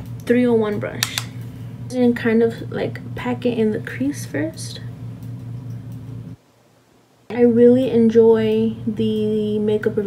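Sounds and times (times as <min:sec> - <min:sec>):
low steady hum with hiss: 0:00.0 - 0:10.0.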